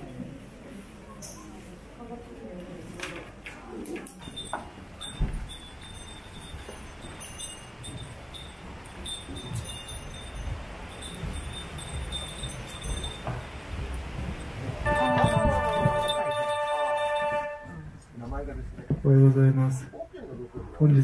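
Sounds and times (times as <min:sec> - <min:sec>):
passengers shuffling and walking: 0:00.0 - 0:21.0.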